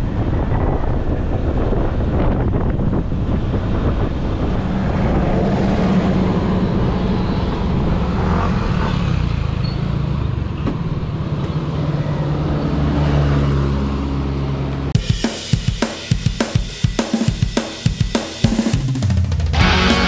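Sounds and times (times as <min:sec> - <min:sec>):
music with drum beat: 0:15.0 - 0:20.0.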